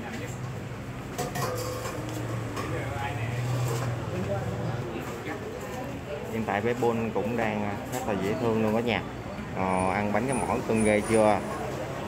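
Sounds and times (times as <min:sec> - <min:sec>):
people talking: 0:09.6 - 0:11.6.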